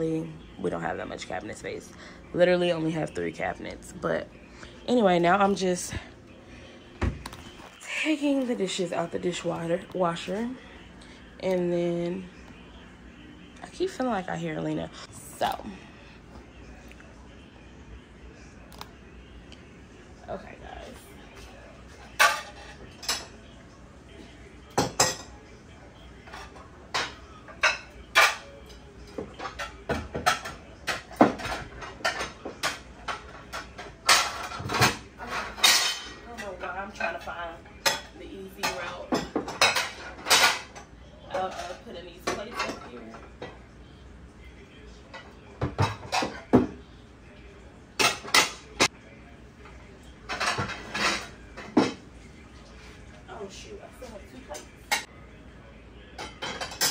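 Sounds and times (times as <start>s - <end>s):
dishes clinking and clattering: 21.3s - 23.6s, 24.6s - 43.8s, 45.0s - 47.4s, 48.0s - 48.9s, 49.6s - 53.6s, 54.2s - 55.2s, 56.0s - 56.9s.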